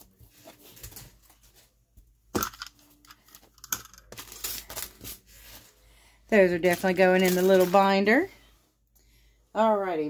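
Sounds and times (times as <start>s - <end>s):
craft supplies rustling: 2.4s - 8.3s.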